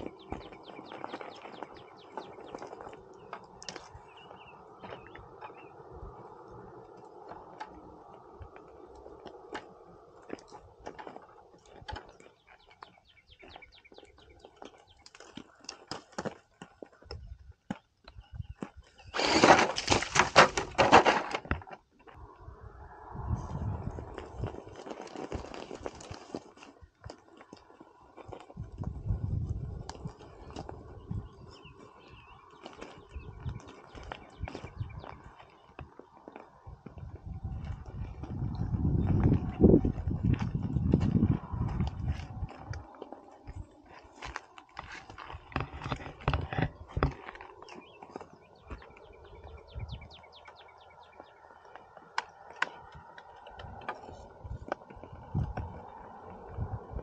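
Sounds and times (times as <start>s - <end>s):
tyres scrabbling on rock: 0.0s - 22.2s, 23.8s - 57.0s
low rumble: 22.2s - 24.8s
small stones clicking and knocking: 24.1s - 28.9s.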